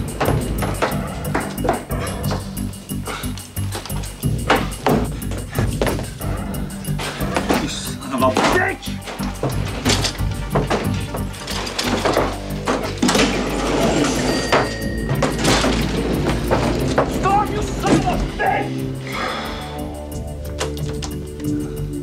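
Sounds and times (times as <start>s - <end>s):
knocks and thumps of doors: 0.0s - 2.6s, 4.2s - 13.6s, 14.6s - 18.5s
tense music score: 0.0s - 22.0s.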